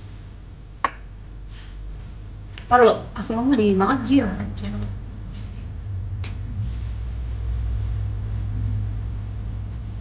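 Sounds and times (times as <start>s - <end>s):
low rumble: 1.8s - 10.0s.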